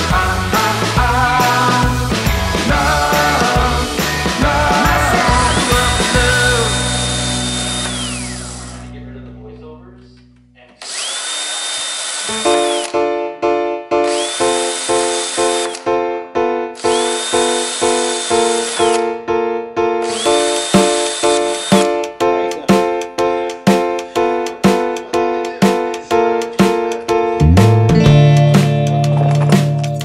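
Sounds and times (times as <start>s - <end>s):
background music: 0.0s - 10.7s, 12.3s - 30.0s
power drill whining through metal: 4.8s - 8.9s, 10.8s - 13.0s, 14.0s - 15.9s, 16.8s - 19.2s, 20.0s - 22.0s.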